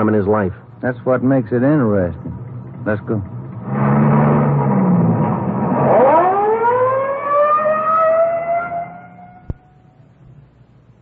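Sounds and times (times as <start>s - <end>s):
car engine running: 1.4s - 6.7s
police siren winding up: 4.2s - 9.6s.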